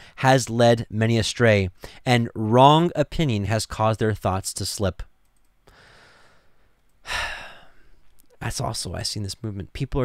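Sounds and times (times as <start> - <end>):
man breathing in: 5.7 - 8.0
man sighing: 7.0 - 8.0.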